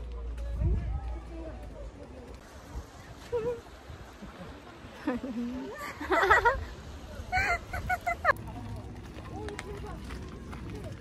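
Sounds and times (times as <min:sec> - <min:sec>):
low wind rumble: 0:00.0 - 0:11.0
woman laughing: 0:04.2 - 0:06.7, 0:07.3 - 0:08.3.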